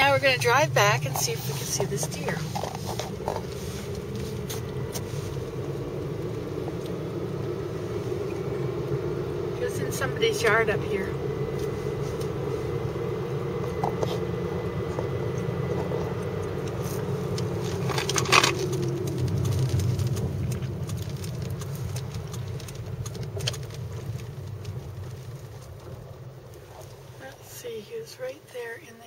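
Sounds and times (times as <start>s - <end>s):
car engine and road noise: 0.0s - 29.0s.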